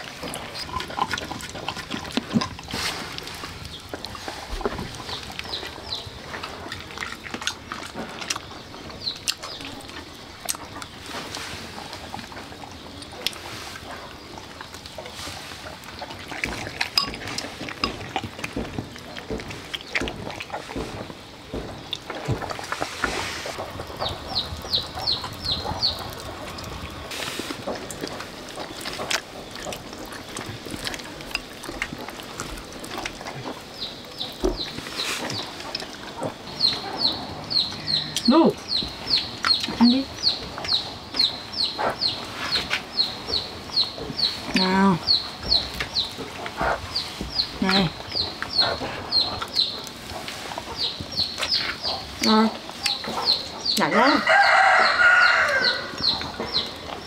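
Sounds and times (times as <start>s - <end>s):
chickens peeping: 0.0s - 57.0s.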